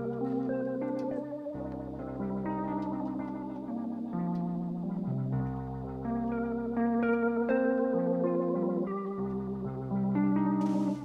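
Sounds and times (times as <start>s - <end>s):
rock instrumental with chorus effects: 0.0s - 11.0s.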